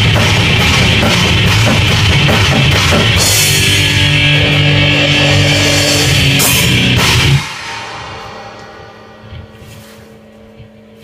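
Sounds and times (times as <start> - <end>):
death metal band playing live: 0.0 - 10.9.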